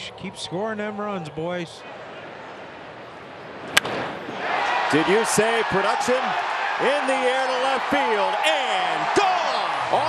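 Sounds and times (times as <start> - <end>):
wooden bat hitting ball: 3.7 - 4.2
crowd cheering: 3.7 - 10.0.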